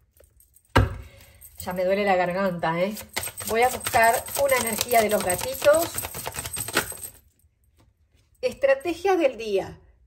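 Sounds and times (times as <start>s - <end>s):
cards being shuffled: 2.9s - 7.2s.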